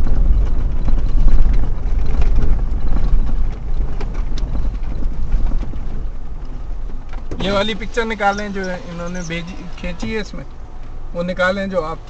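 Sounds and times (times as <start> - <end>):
small clicks and rattles: 0.0 - 7.5
car rumbling over rocks: 0.0 - 12.0.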